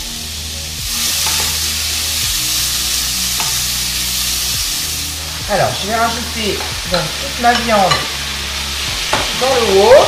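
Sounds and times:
meat sizzling in a wok: 0:00.0 - 0:10.0.

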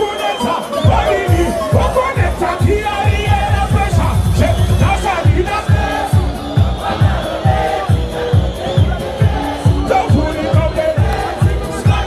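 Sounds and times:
crowd shouting: 0:00.0 - 0:12.0
loud live music with heavy beat: 0:00.0 - 0:12.0.

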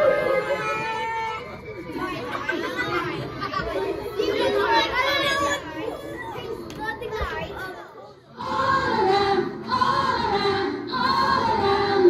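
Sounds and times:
children chattering: 0:00.0 - 0:08.5
children's choir singing: 0:07.2 - 0:12.0.

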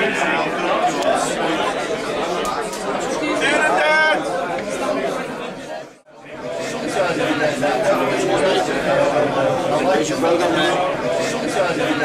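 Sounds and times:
crowd chatter: 0:00.0 - 0:12.0
man's voice: 0:06.3 - 0:12.0.

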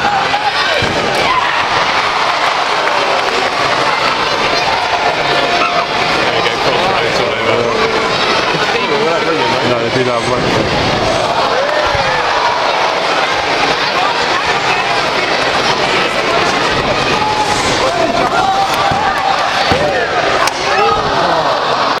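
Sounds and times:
crowd shouting and cheering: 0:00.0 - 0:22.0.

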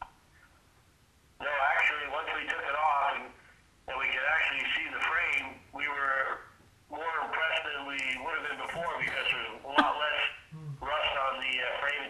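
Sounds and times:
man talking over telephone: 0:01.4 - 0:12.0.

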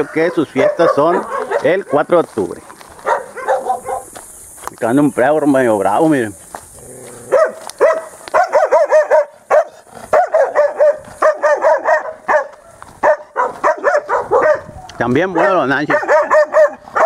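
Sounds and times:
small dog barking fiercely: 0:00.0 - 0:02.1, 0:03.0 - 0:04.2, 0:07.1 - 0:17.0.

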